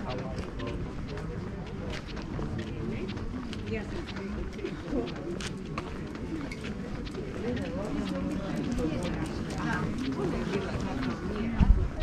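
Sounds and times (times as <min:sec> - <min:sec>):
footsteps on paving: 0:00.0 - 0:12.0
people talking: 0:00.0 - 0:12.0.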